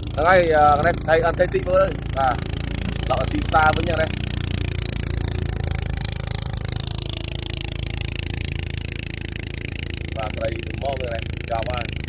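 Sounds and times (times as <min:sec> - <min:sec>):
small boat engine running: 0:00.0 - 0:12.0.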